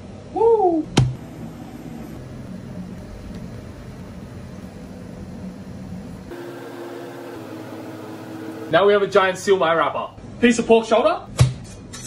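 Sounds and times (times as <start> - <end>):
steady humming tone: 0.0 - 9.5
extraction fan rushing hum: 0.0 - 10.6.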